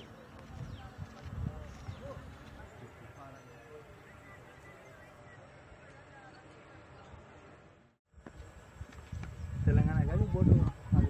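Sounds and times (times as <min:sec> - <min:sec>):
faint distant voices: 0:00.0 - 0:08.0
outdoor background noise: 0:00.0 - 0:11.0.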